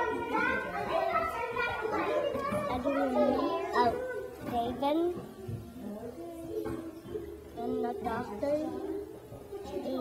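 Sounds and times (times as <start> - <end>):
girl talking: 0.0 - 6.8.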